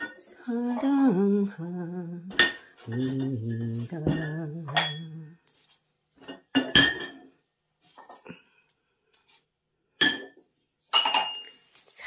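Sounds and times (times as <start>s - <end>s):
ceramic flowerpots knocking: 0.0s - 1.0s, 2.2s - 5.5s, 6.1s - 8.2s.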